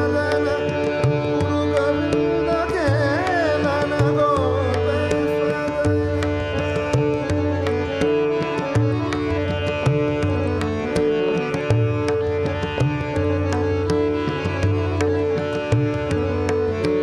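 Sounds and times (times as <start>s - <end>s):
harmonium notes: 0.0s - 17.0s
tabla playing: 0.0s - 17.0s
tanpura drone: 0.0s - 17.0s.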